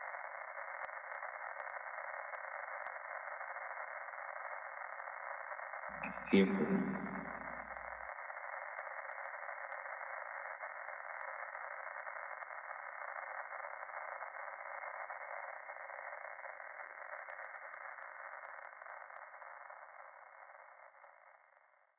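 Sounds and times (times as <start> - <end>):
radio static hiss: 0.0 - 21.3
faint crackles: 0.0 - 21.9.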